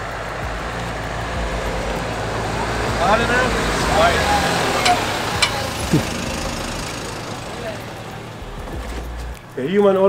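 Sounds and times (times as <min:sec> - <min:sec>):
vehicle passing: 0:00.0 - 0:10.0.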